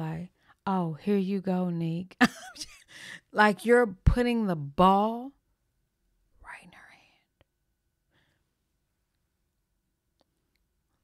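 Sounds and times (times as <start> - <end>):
person whispering faintly: 6.4 - 7.3.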